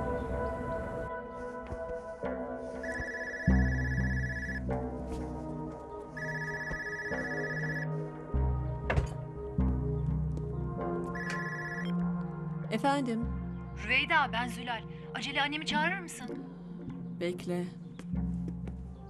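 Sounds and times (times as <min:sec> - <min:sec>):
background music: 0:00.0 - 0:19.0
phone ringtone: 0:02.8 - 0:04.6, 0:06.2 - 0:07.9, 0:11.2 - 0:11.9.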